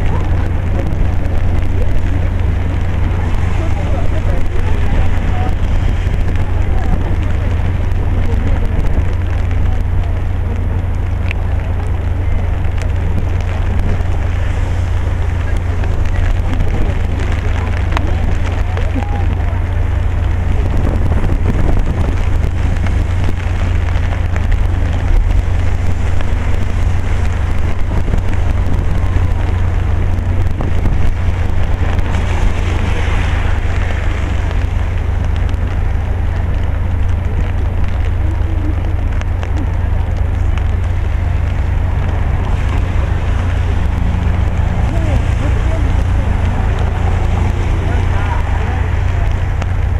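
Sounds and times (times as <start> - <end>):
deep rumble: 0.0 - 49.9
rain falling: 0.0 - 49.9.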